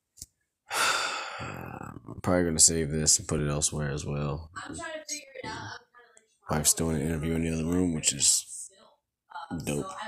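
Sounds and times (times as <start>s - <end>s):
man sighing: 0.7s - 2.0s.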